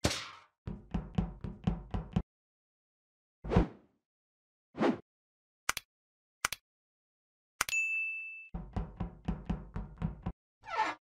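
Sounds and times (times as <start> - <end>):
click with ringing ding: 7.6 - 8.5.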